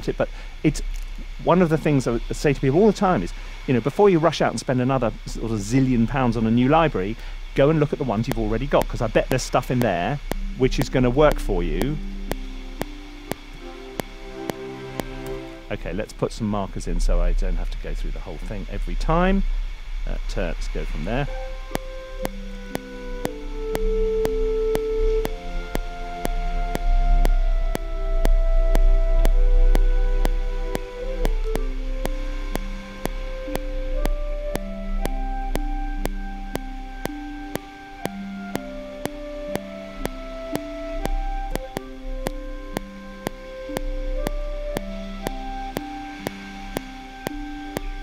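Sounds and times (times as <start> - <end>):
metronome clicking: 0.0 - 15.8, 20.8 - 48.0
low rumble: 0.0 - 48.0
sampled orchestral music: 0.0 - 48.0.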